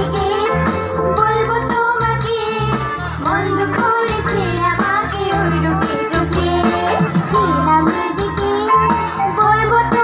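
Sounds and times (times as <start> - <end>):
keyboard: 0.0 - 10.0
women singing: 0.0 - 10.0.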